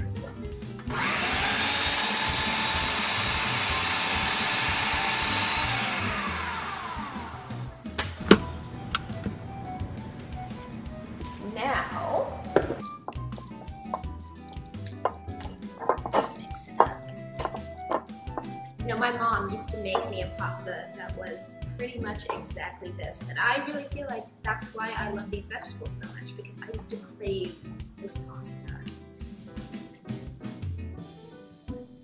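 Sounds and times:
blender motor running: 0:00.9 - 0:07.8.

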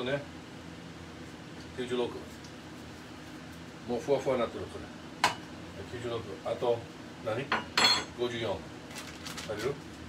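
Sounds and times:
dishes clinking and clattering: 0:07.6 - 0:08.2.

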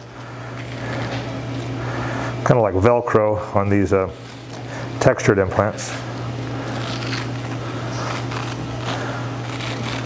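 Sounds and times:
steady low hum: 0:00.0 - 0:10.0
crackling and tearing: 0:00.4 - 0:01.8, 0:05.8 - 0:10.0.

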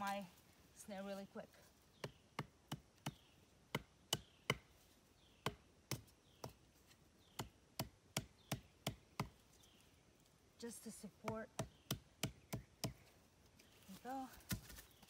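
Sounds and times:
wooden stake being pounded: 0:02.0 - 0:04.8, 0:05.4 - 0:06.7, 0:07.3 - 0:09.4, 0:11.2 - 0:13.0.

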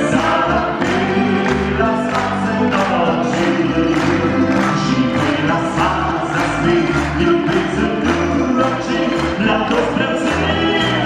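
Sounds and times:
accordion: 0:00.0 - 0:11.0
acoustic guitars: 0:00.0 - 0:11.0
man and woman singing together: 0:00.0 - 0:11.0
steady bass line: 0:00.0 - 0:11.0.

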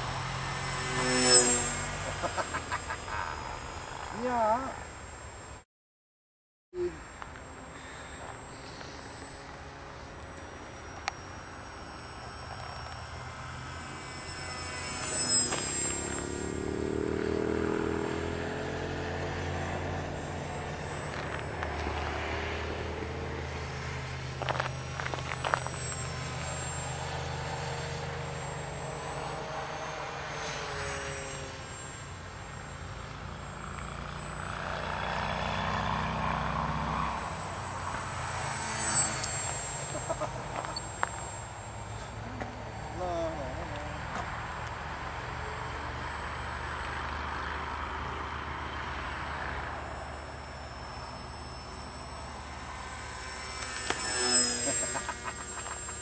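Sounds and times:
electric motor and propeller: 0:00.0 - 0:05.6, 0:06.8 - 0:56.0.

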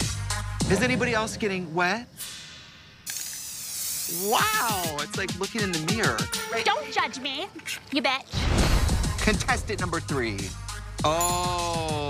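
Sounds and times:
water spraying hiss: 0:02.2 - 0:05.0.

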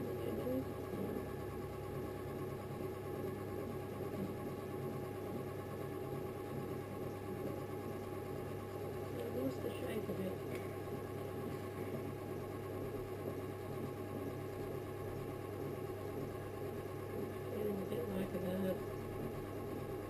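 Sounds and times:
potter's wheel motor humming: 0:00.0 - 0:20.0.

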